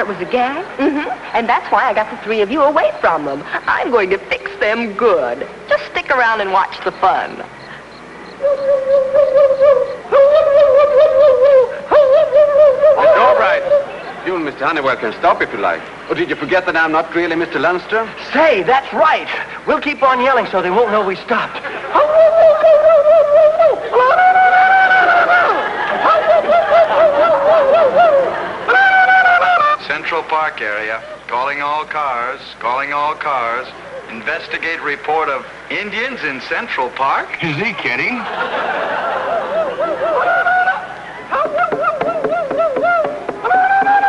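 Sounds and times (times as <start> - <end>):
person warbling war whoop: 8.4 - 13.9, 21.9 - 29.8, 39.3 - 44.0.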